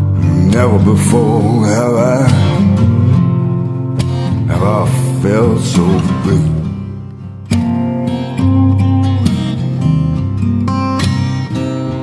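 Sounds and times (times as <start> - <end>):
person singing: 0.0 - 3.0, 4.4 - 7.0
acoustic guitar: 0.0 - 12.0.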